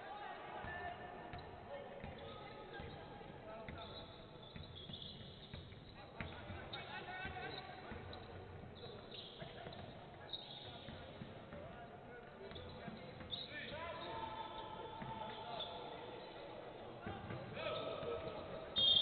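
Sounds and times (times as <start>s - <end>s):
sneakers squeaking: 0.1s - 19.0s.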